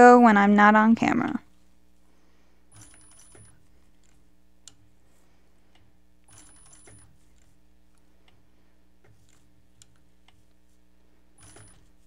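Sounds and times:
steady low hum: 0.0 - 12.0
faint motor whine: 0.7 - 12.0
sewing machine stitching: 6.3 - 7.6, 11.4 - 12.0.

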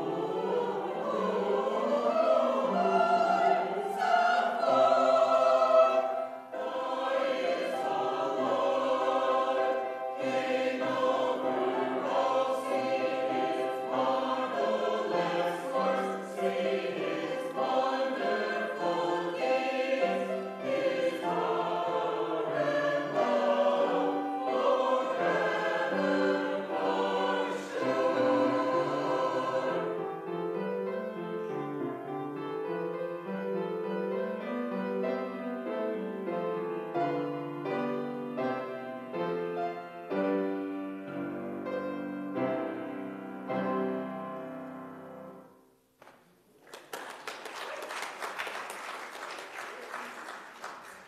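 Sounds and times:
mixed choir singing: 0.0 - 30.3.

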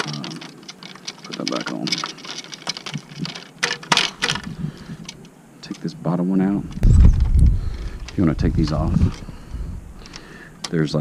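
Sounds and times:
hard plastic parts clicking: 0.0 - 5.9, 6.6 - 11.0.

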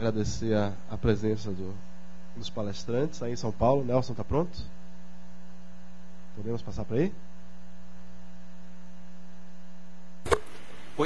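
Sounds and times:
electrical mains hum: 0.0 - 11.0
sharp click: 10.2 - 10.7.

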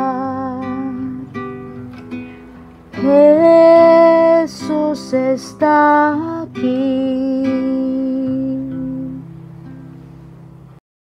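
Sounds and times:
woman singing: 0.0 - 1.4, 3.0 - 9.3
acoustic guitar plucking: 0.0 - 10.8.

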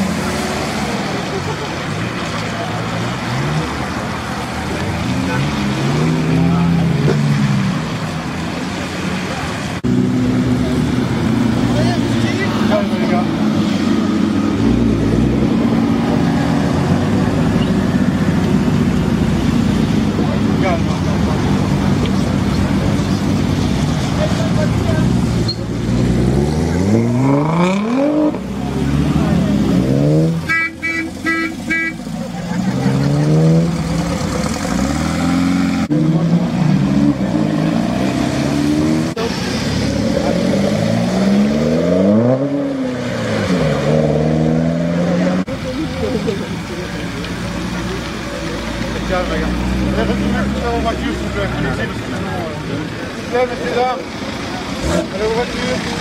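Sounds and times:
car engines revving and accelerating: 0.0 - 56.0
car horn toots: 30.4 - 32.0.

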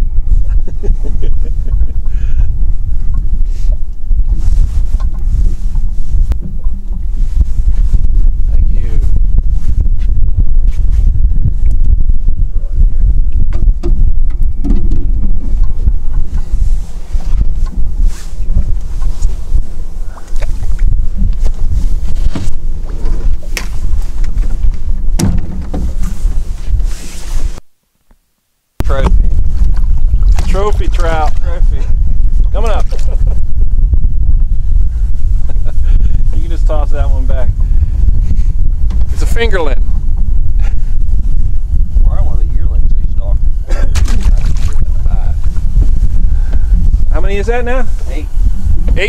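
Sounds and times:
wind buffeting microphone: 0.0 - 27.6, 28.8 - 49.0
knocks and clatter on a boat: 0.2 - 26.8, 37.3 - 41.5, 48.8 - 49.0.

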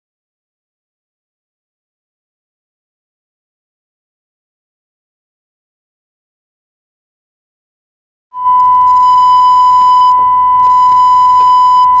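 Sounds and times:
sine test tone: 8.4 - 12.0.

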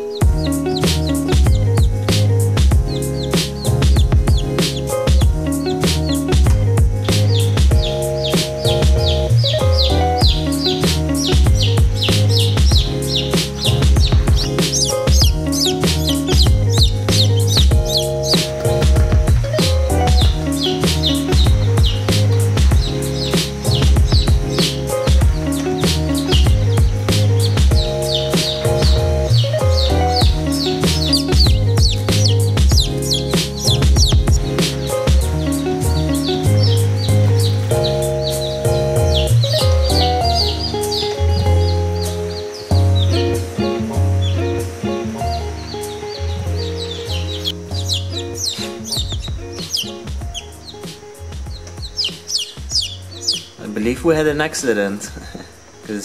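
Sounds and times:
background music: 0.0 - 56.0
chicks peeping: 0.0 - 56.0.

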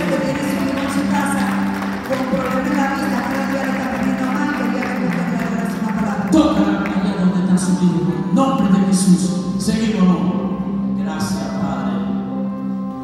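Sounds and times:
worship band keyboard chords: 0.0 - 13.0.

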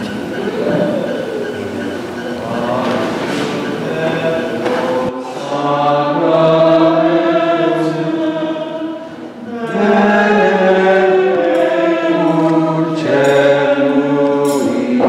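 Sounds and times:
voices singing a hymn: 0.0 - 15.0.

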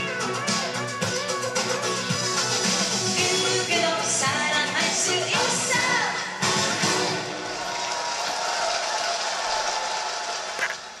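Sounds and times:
audience cheering: 6.6 - 11.0
audience clapping: 7.4 - 11.0.

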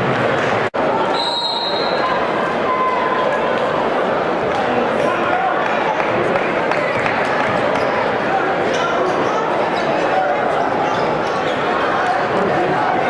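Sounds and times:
crowd chatter in gymnasium: 0.0 - 13.0.

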